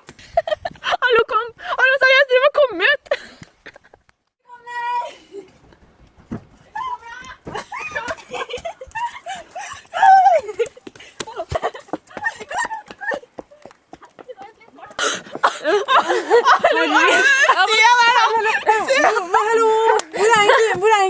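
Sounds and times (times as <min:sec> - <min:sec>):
young women calling and squealing: 0:04.4 - 0:05.4, 0:06.7 - 0:21.0.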